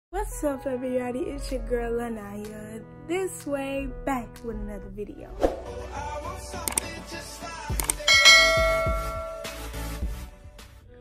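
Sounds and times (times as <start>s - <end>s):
background music with thudding beat: 5.4s - 10.8s
notification bell ding: 8.0s - 9.6s.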